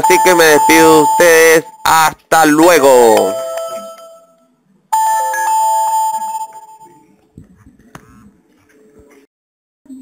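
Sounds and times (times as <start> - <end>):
electronic chime: 0.0 - 2.0, 3.3 - 7.0.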